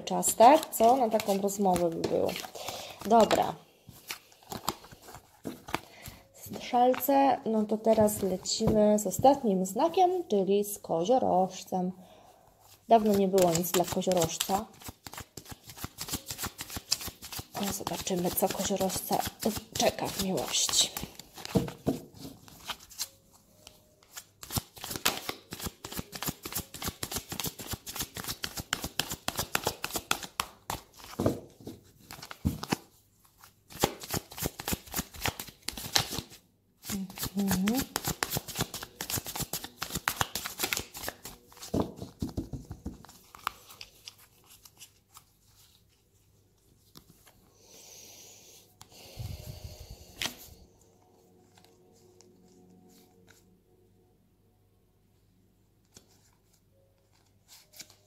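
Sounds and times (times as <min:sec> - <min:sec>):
cards being shuffled: 0:00.2 - 0:09.3, 0:12.9 - 0:45.9, 0:50.2 - 0:50.6, 0:57.1 - 0:58.0.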